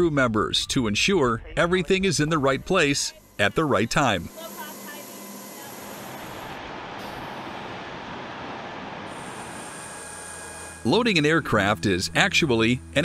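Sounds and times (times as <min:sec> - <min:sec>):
steady rushing mechanical noise: 0:02.0 - 0:11.1.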